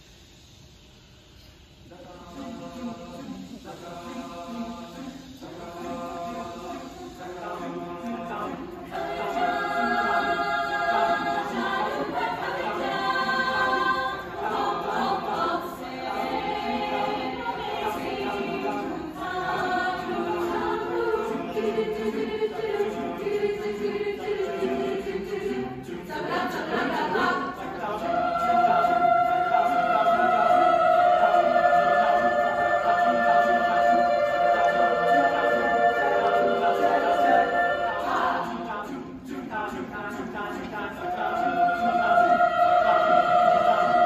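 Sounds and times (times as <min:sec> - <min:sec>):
mixed choir singing chords: 0:01.8 - 0:44.0.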